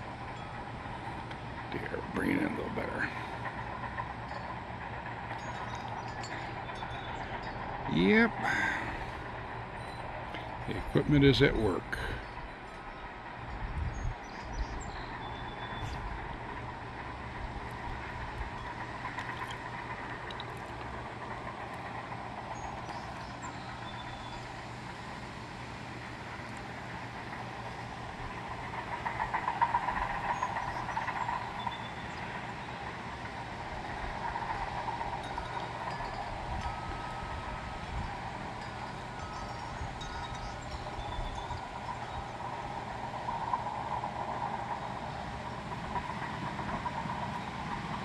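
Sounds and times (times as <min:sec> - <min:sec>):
distant bulldozer engine running: 0:00.0 - 0:48.0.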